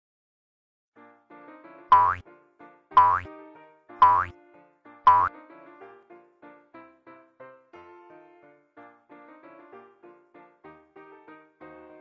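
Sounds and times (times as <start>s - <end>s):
light keyboard melody: 1.0s - 12.0s.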